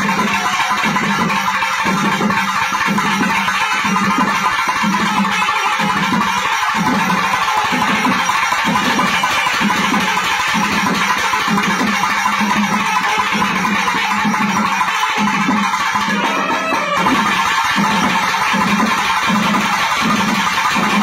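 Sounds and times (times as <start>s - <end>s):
drums beating steady rhythm: 0.0s - 21.0s
reedy wind ensemble playing loudly: 16.0s - 17.2s.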